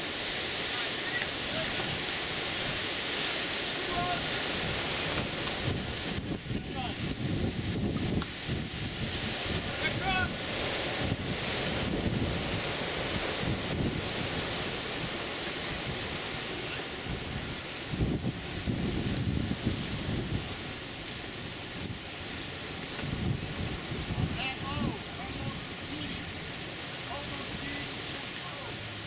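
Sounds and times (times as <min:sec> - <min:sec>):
wind buffeting microphone: 0:01.2 - 0:28.0.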